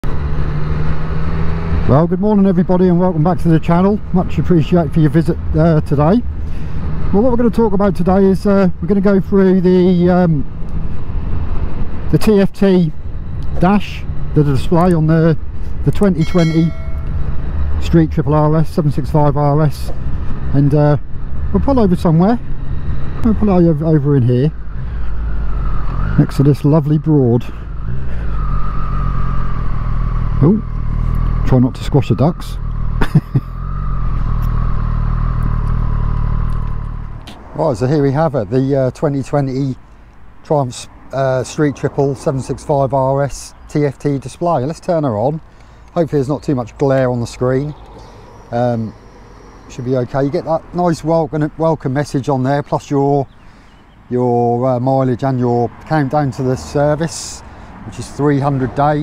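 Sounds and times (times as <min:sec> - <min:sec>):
motorcycle engine at low revs: 0:00.0 - 0:04.4, 0:27.5 - 0:37.4
motorcycle engine cruising: 0:00.0 - 0:12.2, 0:20.0 - 0:39.6, 0:45.4 - 0:51.5
wind and road noise: 0:00.0 - 0:59.0.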